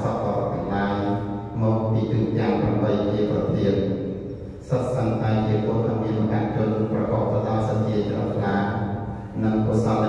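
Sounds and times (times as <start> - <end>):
man chanting into a microphone: 0.0 - 4.0, 4.6 - 10.0.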